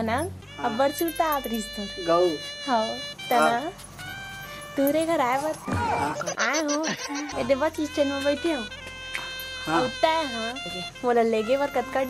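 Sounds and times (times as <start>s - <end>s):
background music with held tones: 0.0s - 12.0s
person speaking: 5.4s - 7.6s.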